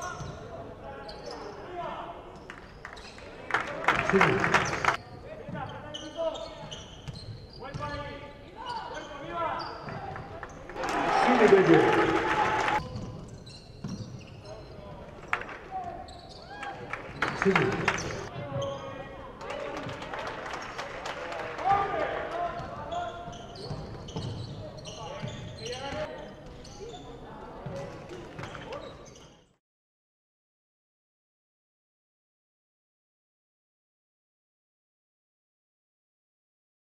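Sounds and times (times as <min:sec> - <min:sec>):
sneaker squeaks: 0:00.0 - 0:00.4, 0:01.0 - 0:01.7, 0:02.4 - 0:03.4, 0:04.6 - 0:10.6, 0:12.8 - 0:15.0, 0:15.8 - 0:19.0, 0:22.6 - 0:29.6
players shouting: 0:10.8 - 0:12.8.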